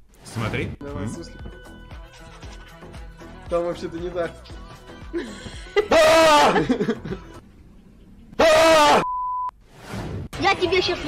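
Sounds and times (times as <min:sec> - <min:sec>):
steady beep tone: 0:09.0 - 0:09.5.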